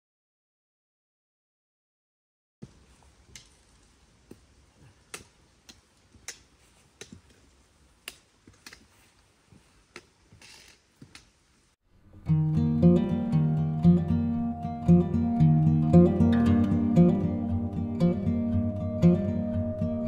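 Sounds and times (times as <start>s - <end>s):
faint clicks: 2.7s - 8.9s
acoustic guitar music: 12.0s - 20.0s.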